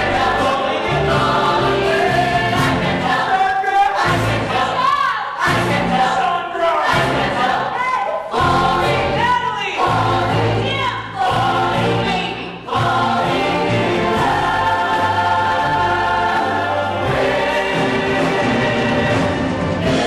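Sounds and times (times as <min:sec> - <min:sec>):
choir singing: 0:00.0 - 0:20.0
orchestra playing: 0:08.4 - 0:20.0.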